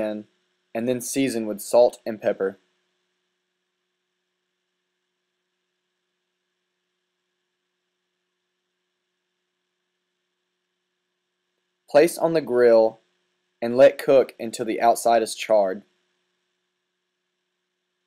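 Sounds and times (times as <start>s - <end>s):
faint low hum: 0.0s - 18.0s.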